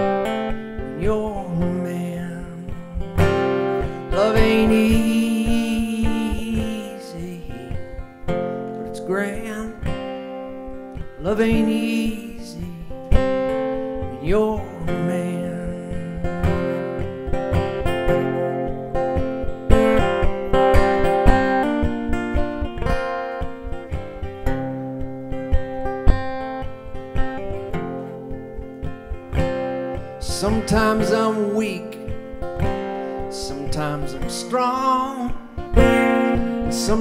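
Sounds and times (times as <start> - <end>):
acoustic guitar playing: 0.0 - 37.0.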